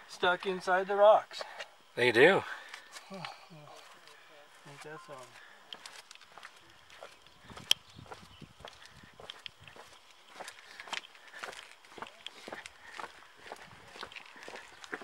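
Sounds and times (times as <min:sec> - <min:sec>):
footsteps on gravelly trail: 0:03.7 - 0:15.0.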